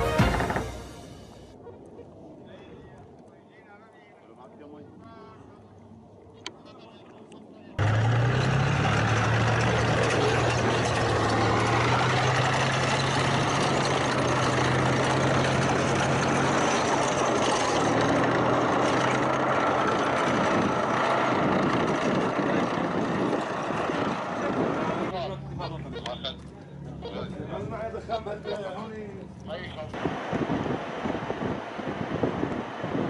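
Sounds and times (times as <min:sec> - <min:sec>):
tank diesel engine driving past: 0:07.8 - 0:33.0.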